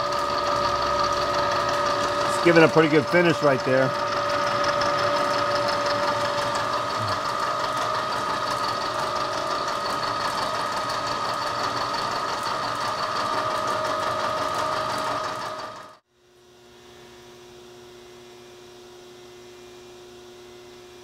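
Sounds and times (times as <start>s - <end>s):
milling machine cutting steel: 0.0s - 16.0s.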